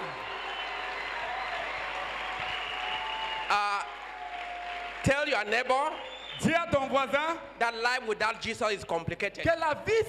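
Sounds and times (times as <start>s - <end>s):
congregation clapping: 0.0s - 6.7s.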